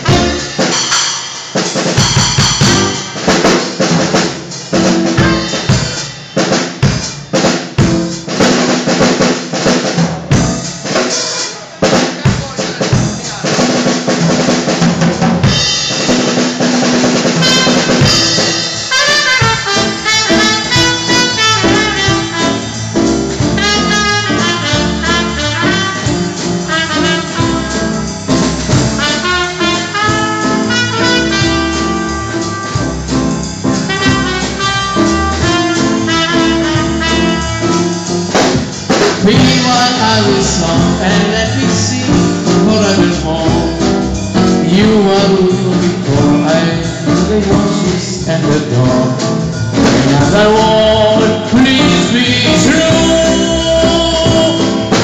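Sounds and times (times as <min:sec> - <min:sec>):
trumpet melody: 0:00.0 - 0:01.2, 0:01.9 - 0:03.5, 0:04.8 - 0:06.0, 0:17.2 - 0:55.0
drum kit break: 0:00.0 - 0:55.0
swing jazz band playing: 0:00.0 - 0:55.0.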